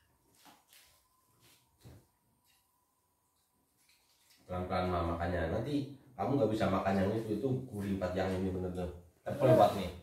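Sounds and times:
faint steady tone: 0:00.0 - 0:04.5.

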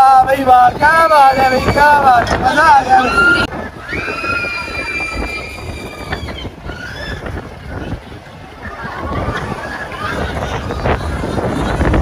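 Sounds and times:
fairground ride rumble: 0:00.0 - 0:12.0
wind buffeting microphone: 0:00.0 - 0:12.0.

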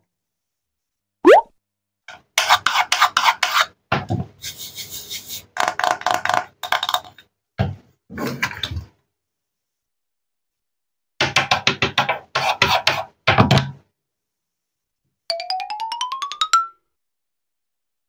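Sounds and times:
wooden toy knife scraping tabletop: 0:02.1 - 0:03.8, 0:12.0 - 0:13.1.

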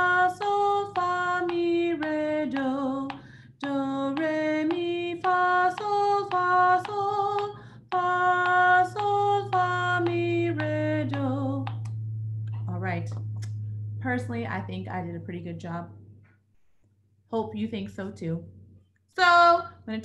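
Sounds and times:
woman singing solfege syllables: 0:00.0 - 0:15.8.

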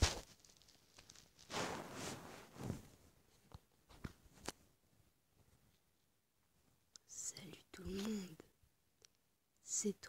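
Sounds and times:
person whispering softly: 0:07.0 - 0:08.5.

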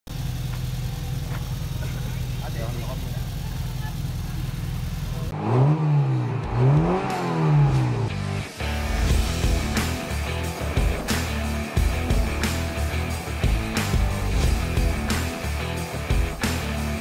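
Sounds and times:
race car engine idling and revving: 0:00.1 - 0:17.0.

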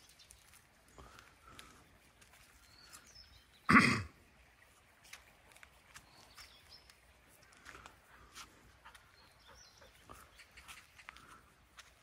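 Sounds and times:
faint bird chirps: 0:08.9 - 0:11.5.

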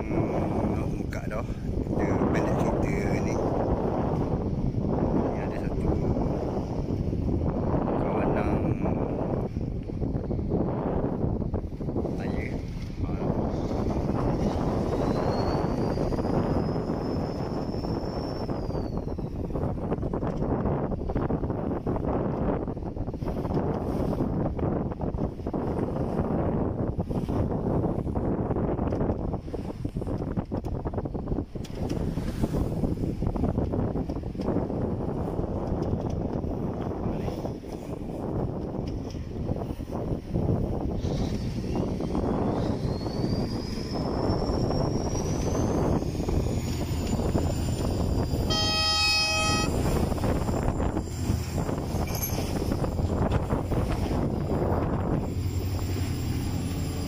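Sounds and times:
boat engine running: 0:00.0 - 0:57.0
wind: 0:00.0 - 0:57.0
thin rising whine: 0:41.7 - 0:57.0
short horn blast: 0:48.5 - 0:50.3.

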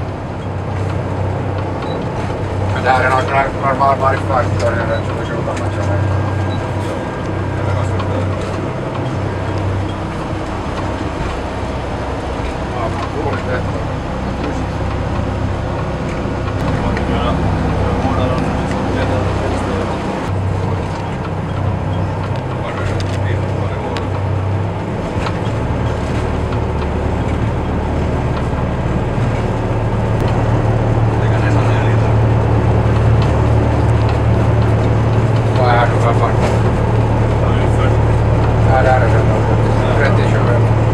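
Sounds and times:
boat diesel engines droning: 0:00.0 - 0:40.9
water and hull noise: 0:00.0 - 0:40.9.

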